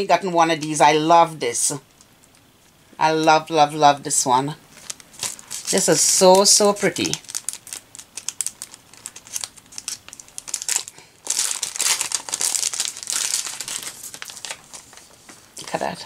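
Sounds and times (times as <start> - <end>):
plastic packaging crinkling: 4.7 - 15.5.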